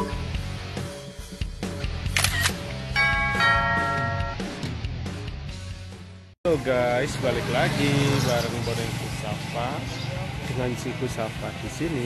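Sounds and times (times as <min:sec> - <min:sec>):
background music with a beat: 0:00.0 - 0:06.2
bright bell chime: 0:03.0 - 0:04.4.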